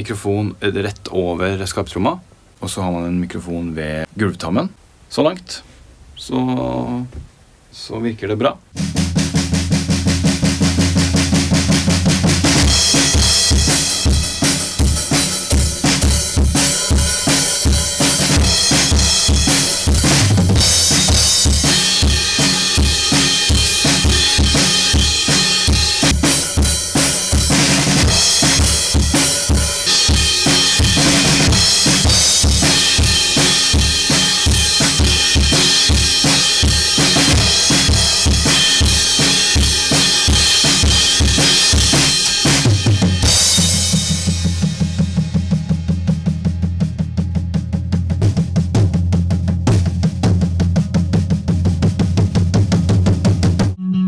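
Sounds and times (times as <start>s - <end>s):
bass drum and snare beat: 8.8s - 53.8s
fast drum roll: 8.8s - 53.8s.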